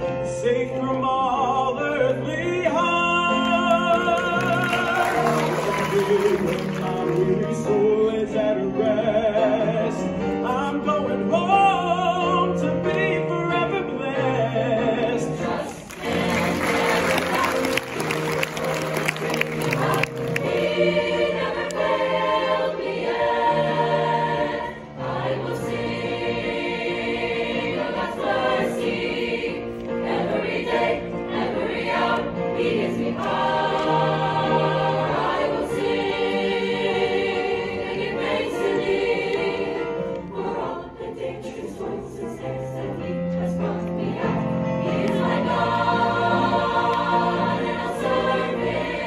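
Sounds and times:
choir singing in harmony: 0.0 - 49.0.

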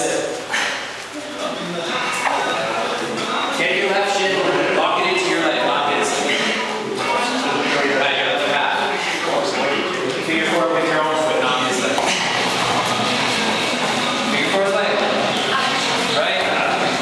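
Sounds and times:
people talking at once: 0.0 - 17.0.

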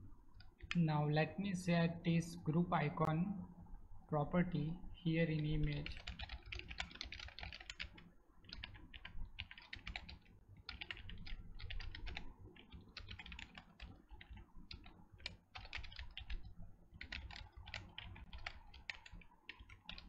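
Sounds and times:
fast typing on computer keyboard: 0.4 - 0.8, 5.4 - 20.0.

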